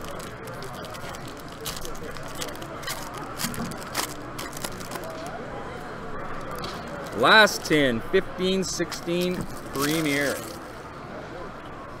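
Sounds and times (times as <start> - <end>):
foil wrapper crinkling: 0.0 - 5.4, 6.3 - 7.8, 8.8 - 10.8
background crowd voices: 0.0 - 12.0.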